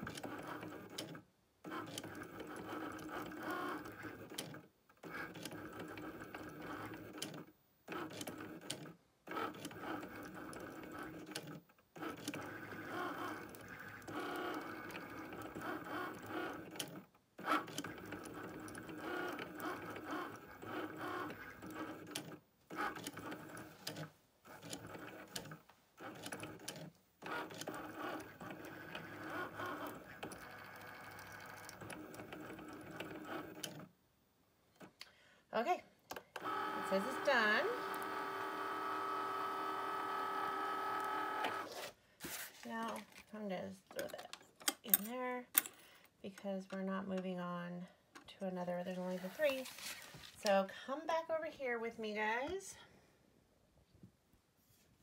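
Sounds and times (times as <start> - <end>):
cutting machine motors whirring: 26.0 - 33.8, 36.3 - 41.9.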